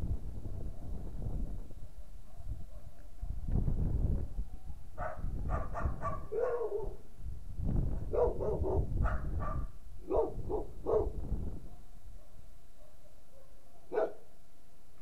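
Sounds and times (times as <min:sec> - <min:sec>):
wind rumbling on microphone: 0:00.0 - 0:12.3
dog barking: 0:01.9 - 0:03.4, 0:05.0 - 0:07.0, 0:08.1 - 0:14.3.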